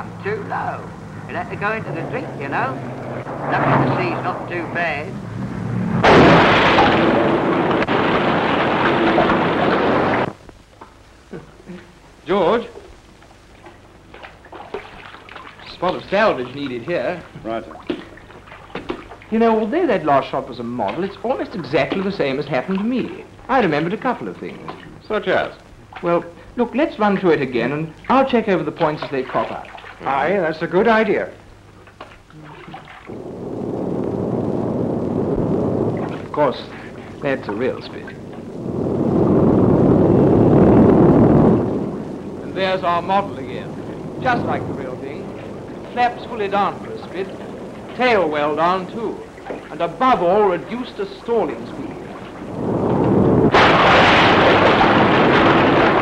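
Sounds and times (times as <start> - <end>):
aircraft rumbling roar: 0.0 - 10.4, 32.3 - 56.0
man speaking: 0.5 - 2.7, 15.6 - 17.7, 19.3 - 31.4, 36.3 - 38.2, 42.4 - 52.1
water trickling and splashing: 1.1 - 10.4, 13.5 - 38.9, 41.6 - 53.4.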